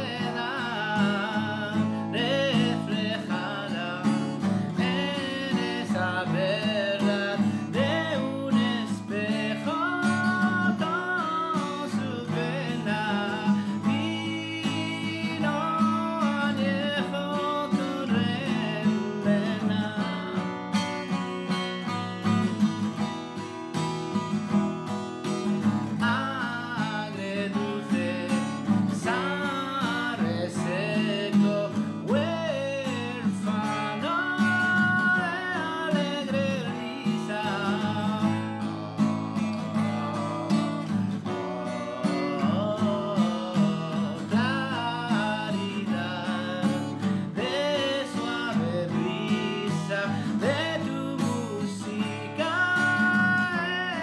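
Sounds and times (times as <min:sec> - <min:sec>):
man singing: 0:00.0 - 0:23.1, 0:25.3 - 0:54.0
acoustic guitar: 0:00.0 - 0:54.0.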